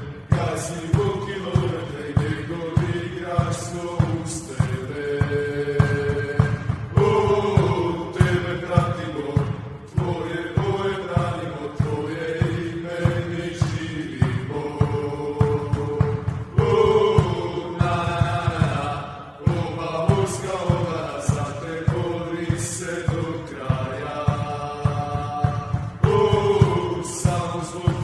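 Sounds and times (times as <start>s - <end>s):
song with chanted vocals over beat: 0.0s - 28.0s.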